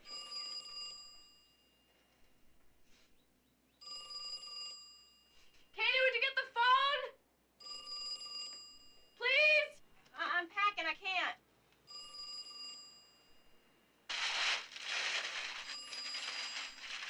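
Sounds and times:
telephone bell ringing: 0:00.0 - 0:02.0, 0:03.8 - 0:05.6, 0:07.6 - 0:09.2, 0:11.9 - 0:13.7, 0:15.6 - 0:17.0.

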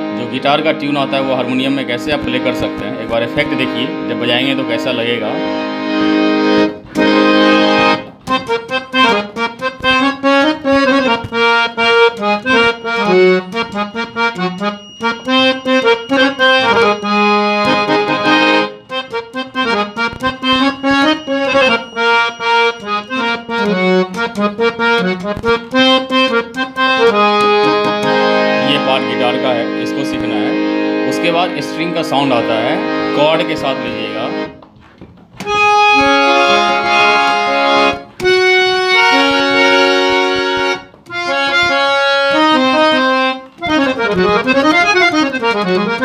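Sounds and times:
harmonium playing short notes: 0:00.0 - 0:46.0.

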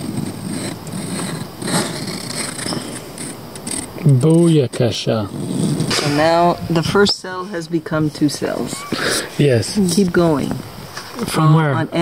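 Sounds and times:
compasses scratching on paper: 0:00.0 - 0:06.0
steady background hiss: 0:00.0 - 0:12.0.

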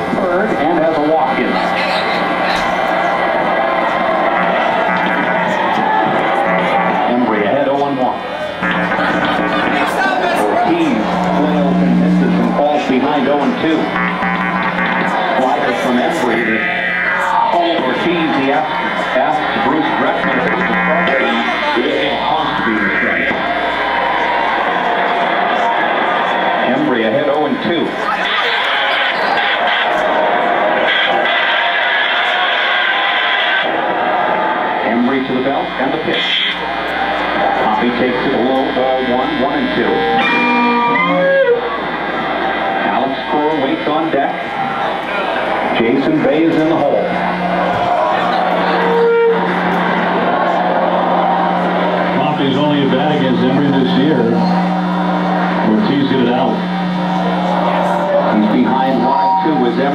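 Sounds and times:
distorted electric guitar noise: 0:00.0 - 0:59.9
radio voice: 0:04.8 - 0:23.6, 0:34.9 - 0:36.7, 0:37.4 - 0:41.3, 0:42.8 - 0:49.3, 0:52.2 - 0:54.6, 0:55.6 - 0:59.9.

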